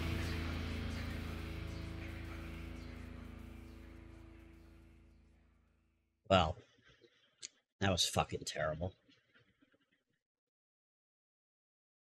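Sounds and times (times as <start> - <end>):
heavy rock sustained chord: 0.0 - 5.4.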